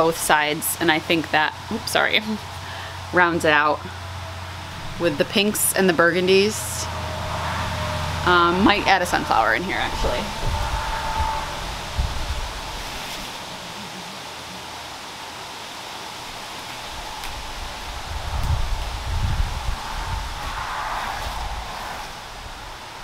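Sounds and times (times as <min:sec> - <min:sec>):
low rumbling: 0:00.0 - 0:15.3, 0:16.8 - 0:23.0
outdoor hiss: 0:00.0 - 0:23.0
flower stems rustling: 0:08.5 - 0:15.2.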